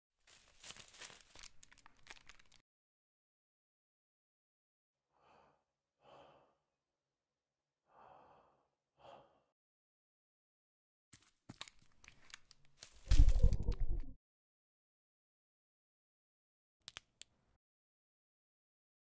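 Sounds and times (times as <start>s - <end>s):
soft tense breaths: 5.1s - 6.9s, 7.8s - 9.6s.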